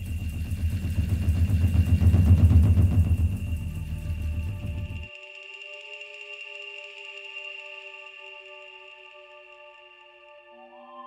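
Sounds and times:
deep rough rumble: 0.0 - 5.1.

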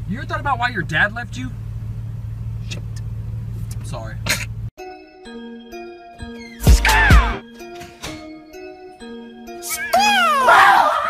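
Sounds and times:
background music: 4.8 - 11.0
man screaming in fright: 6.8 - 7.4, 9.9 - 11.0.

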